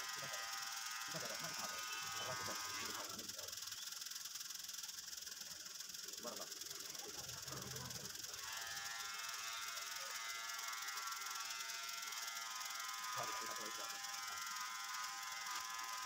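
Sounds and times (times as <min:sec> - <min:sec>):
electric hair trimmer humming: 0:00.0 - 0:16.0.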